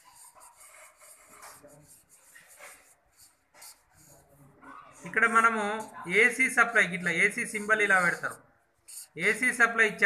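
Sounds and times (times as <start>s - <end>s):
marker rubbing on paper: 0.0s - 10.0s.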